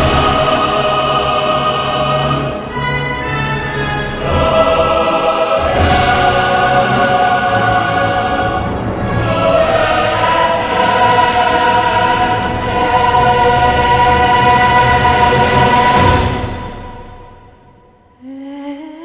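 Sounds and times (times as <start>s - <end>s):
choir and orchestra hymn: 0.0s - 17.7s.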